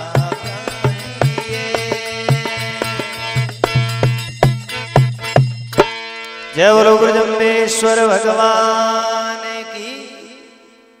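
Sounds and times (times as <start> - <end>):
man chanting: 0.0 - 3.2, 6.5 - 10.8.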